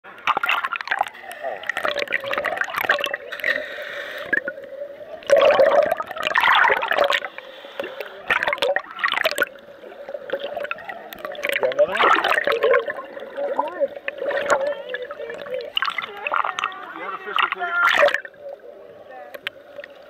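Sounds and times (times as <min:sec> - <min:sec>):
water sloshing and splashing: 0:00.1 - 0:20.0.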